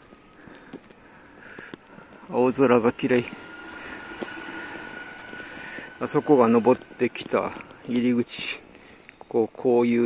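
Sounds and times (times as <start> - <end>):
low urban hum: 0.0 - 10.0
faint high steady tone: 1.7 - 9.2.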